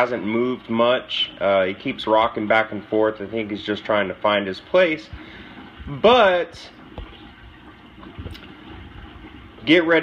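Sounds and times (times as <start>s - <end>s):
water rushing in aquarium: 0.0s - 10.0s.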